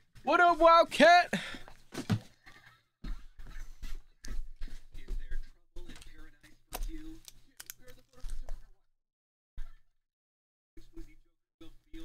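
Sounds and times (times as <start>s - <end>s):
cards and packaging rustling: 5.9s - 8.7s.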